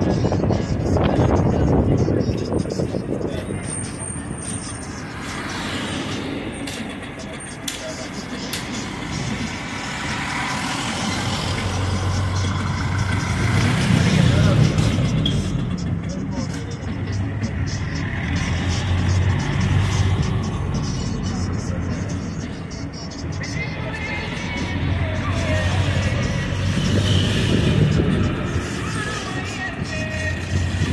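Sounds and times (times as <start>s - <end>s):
music: 0.0s - 30.9s
street traffic: 0.0s - 30.9s
vehicle engine hum: 0.0s - 30.9s
voices: 0.0s - 30.9s.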